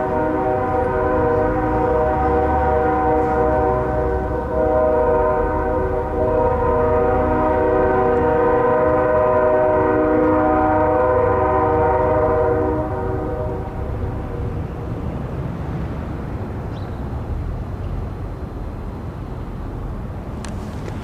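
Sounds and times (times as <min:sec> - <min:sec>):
loud horn chord: 0:00.0 - 0:14.1.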